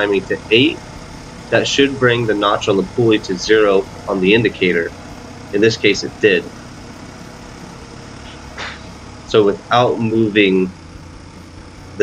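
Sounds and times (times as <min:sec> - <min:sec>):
engine idling: 0:00.0 - 0:12.0.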